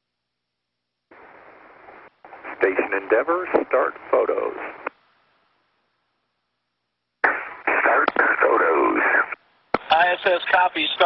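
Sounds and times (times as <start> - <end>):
crackly radio transmission: 1.1 - 5.0, 7.2 - 11.0
radio click: 1.1 - 5.0, 7.2 - 10.0
radio voice: 2.3 - 4.9, 7.6 - 11.0.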